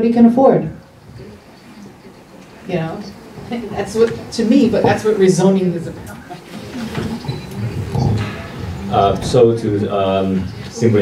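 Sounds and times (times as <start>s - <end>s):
low voices: 0.5s - 11.0s.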